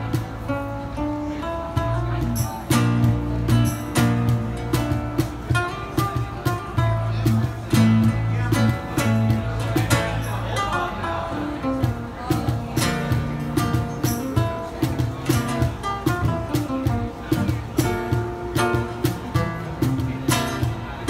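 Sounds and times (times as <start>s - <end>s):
acoustic guitar playing: 0.0s - 21.0s
electric bass guitar: 0.0s - 21.0s
sharp percussion strokes: 2.0s - 10.7s, 11.8s - 20.9s.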